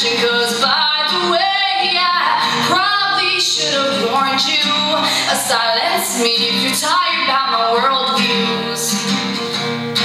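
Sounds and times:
girl singing: 0.0s - 9.3s
acoustic guitar: 0.0s - 10.0s.

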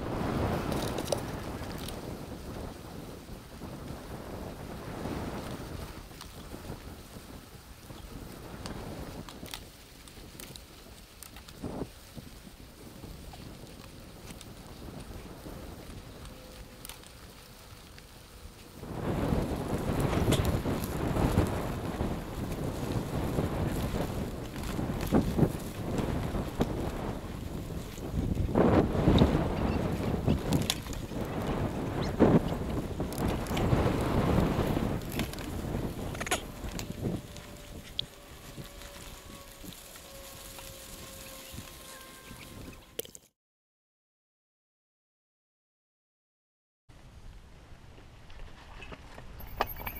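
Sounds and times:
wind rushing over microphone: 0.0s - 43.0s
mountain bike rattling and knocking: 5.0s - 42.2s, 49.3s - 49.9s.

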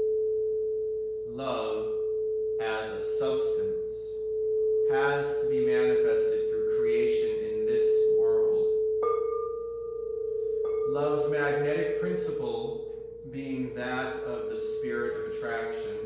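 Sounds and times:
singing bowl steady tone: 0.0s - 16.0s.

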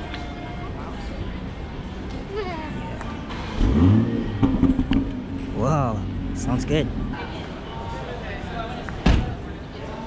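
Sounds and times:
car engine starting and idling: 3.2s - 7.5s.

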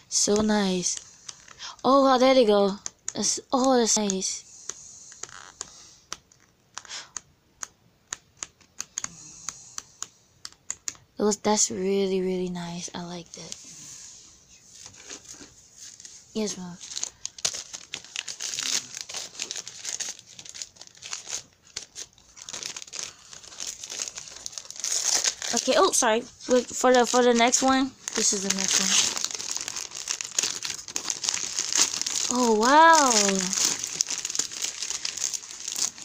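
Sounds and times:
packaging rustling and crinkling: 14.7s - 36.0s
paper tearing: 23.6s - 36.0s.

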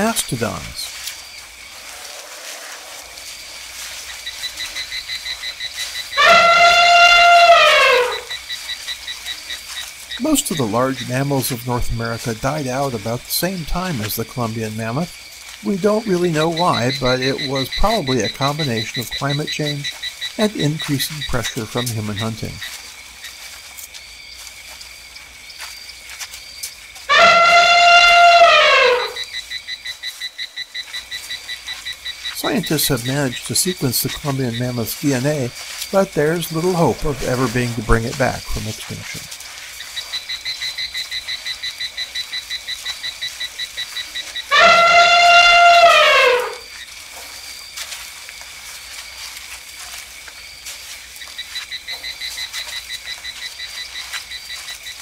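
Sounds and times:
high insect chirping: 0.0s - 55.0s
elephant trumpeting: 6.0s - 8.4s, 27.1s - 29.3s, 44.4s - 46.7s.

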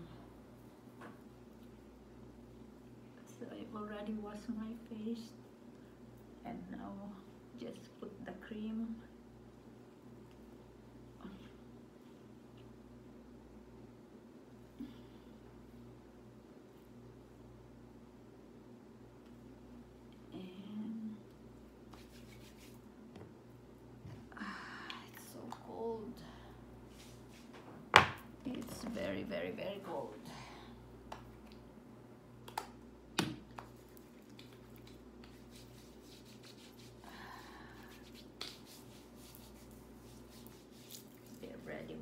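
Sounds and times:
low room hum: 0.0s - 42.0s
soft brushing: 21.8s - 22.9s, 26.8s - 27.6s, 33.6s - 42.0s
fingers rubbing skin: 21.9s - 22.8s, 33.6s - 37.0s, 37.8s - 41.5s.

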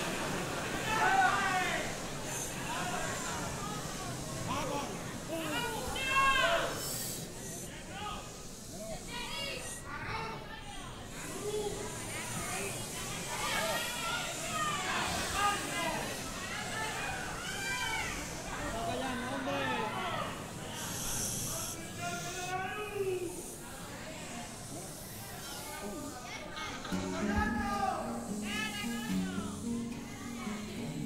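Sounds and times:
faint voices: 0.0s - 31.0s
people talking: 0.0s - 31.0s
steady hiss: 0.0s - 31.0s.

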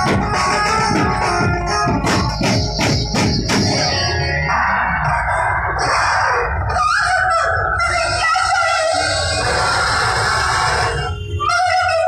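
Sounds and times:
heavy bass beat: 0.0s - 5.8s
band music through loud sound system: 0.0s - 12.0s.

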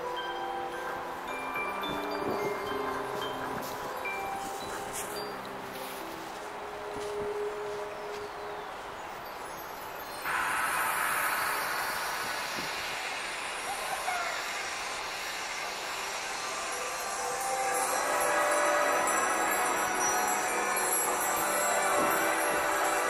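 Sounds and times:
shimmering high tones over loudspeakers: 0.0s - 23.0s.

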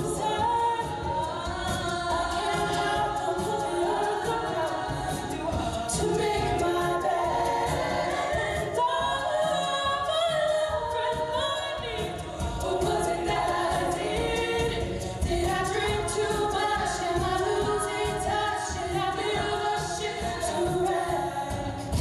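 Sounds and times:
women singing a cappella harmony: 0.0s - 22.0s.

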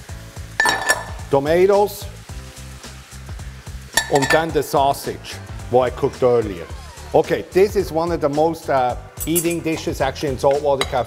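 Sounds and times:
background music with beat: 0.0s - 11.0s
food sizzling in a skillet: 0.0s - 11.0s.

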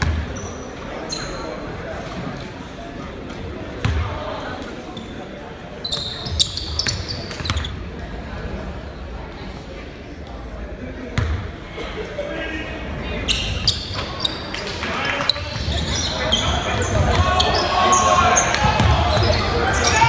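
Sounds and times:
basketball bouncing on court: 0.0s - 0.3s, 3.8s - 4.1s, 11.2s - 11.4s, 18.5s - 19.5s
voices of players and spectators: 0.0s - 20.0s.

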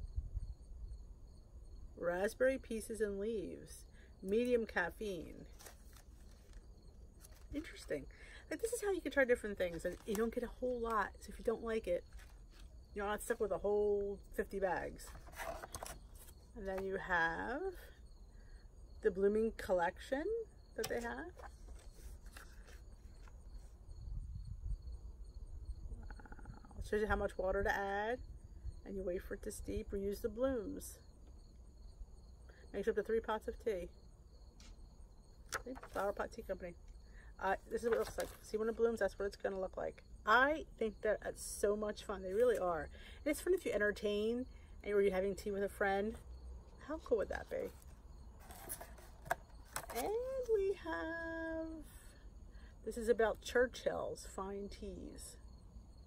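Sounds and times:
insects chirping: 0.0s - 56.0s
paper card rustling: 5.5s - 6.6s, 7.2s - 7.9s, 9.4s - 12.7s, 14.9s - 16.9s, 20.8s - 23.4s, 35.5s - 36.2s, 37.7s - 38.6s, 47.4s - 50.5s.

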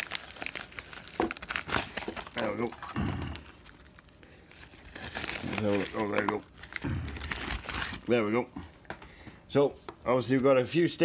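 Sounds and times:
plastic mailer rustling: 0.0s - 8.4s.

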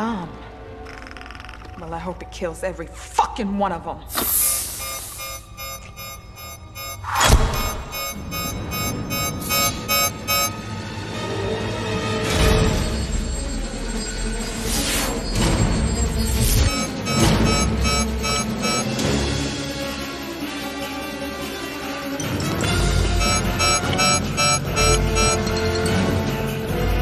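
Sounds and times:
dramatic film score: 0.0s - 27.0s.

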